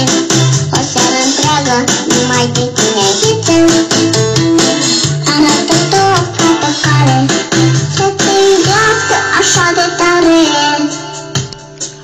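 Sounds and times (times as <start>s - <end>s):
person singing: 0.0s - 11.4s
guitar accompaniment: 0.0s - 12.0s.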